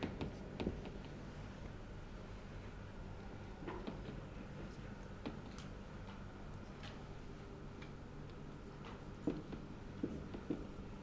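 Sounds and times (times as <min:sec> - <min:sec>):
marker tapping on whiteboard: 0:00.0 - 0:01.2, 0:03.6 - 0:04.2, 0:09.2 - 0:10.8
low steady hum: 0:00.0 - 0:11.0.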